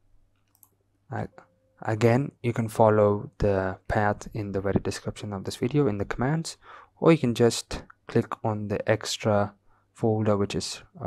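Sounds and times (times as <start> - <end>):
man speaking: 1.1 - 11.0.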